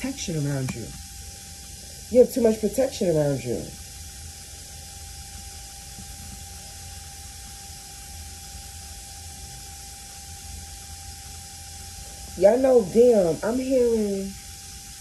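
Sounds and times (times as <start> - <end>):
background hiss: 0.0 - 15.0
faint steady tone: 0.0 - 15.0
low hum: 0.0 - 15.0.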